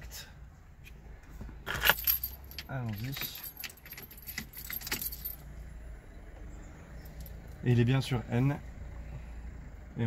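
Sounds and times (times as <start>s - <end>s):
car keys jangling: 1.6s - 5.5s.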